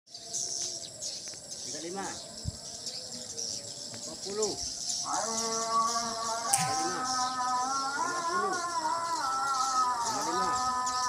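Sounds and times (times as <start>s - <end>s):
flock of birds twittering: 0.1s - 11.0s.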